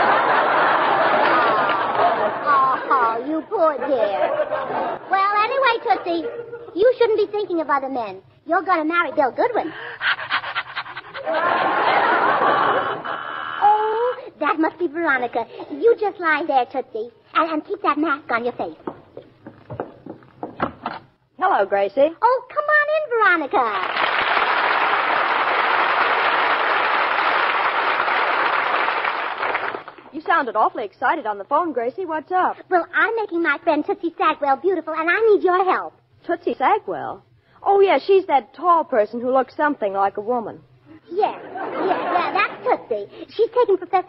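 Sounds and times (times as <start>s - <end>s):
audience applause: 0.0s - 2.3s, 23.8s - 30.1s
studio audience laughing: 0.0s - 5.2s, 6.0s - 6.8s, 10.6s - 13.6s, 41.4s - 42.8s.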